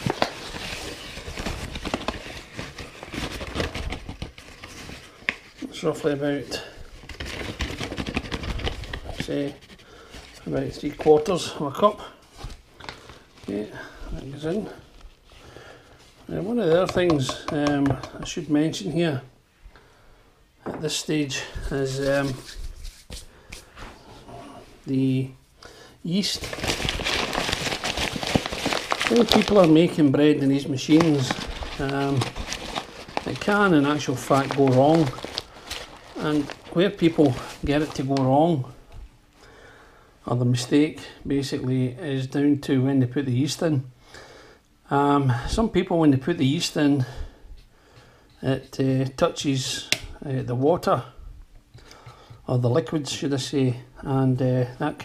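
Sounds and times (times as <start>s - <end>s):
plastic bag crinkling: 0.0s - 5.3s, 26.1s - 38.6s.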